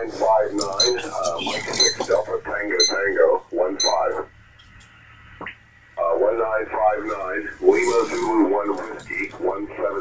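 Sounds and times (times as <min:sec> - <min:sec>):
voices over radio: 0:00.0 - 0:04.3, 0:06.0 - 0:10.0.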